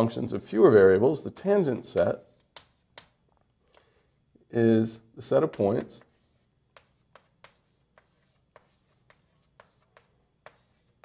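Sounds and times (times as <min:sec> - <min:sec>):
writing tool tapping on board: 0:02.0 - 0:03.2, 0:06.7 - 0:10.8.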